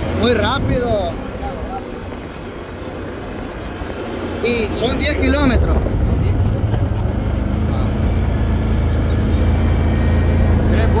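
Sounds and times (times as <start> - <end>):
motorbike engine rumbling: 0.0 - 11.0.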